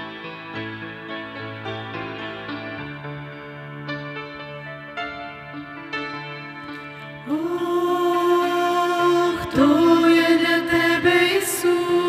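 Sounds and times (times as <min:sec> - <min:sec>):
piano: 0:00.0 - 0:12.0
women singing in harmony: 0:07.2 - 0:12.0.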